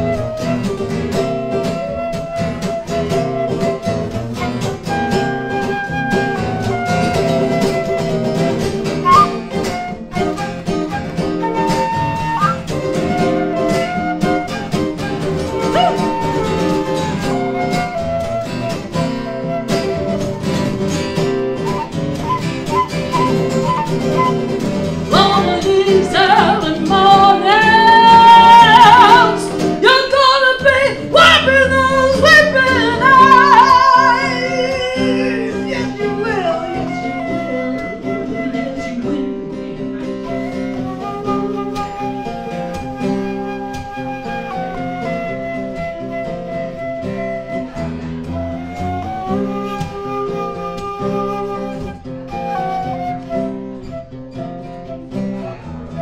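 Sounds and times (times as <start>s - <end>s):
acoustic guitars strumming: 0.0s - 56.0s
lead guitar melody: 0.0s - 56.0s.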